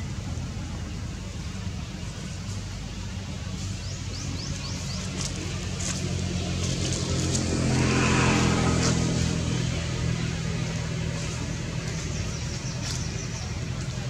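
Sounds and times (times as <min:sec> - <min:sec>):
vehicle engine running: 0:00.0 - 0:14.0.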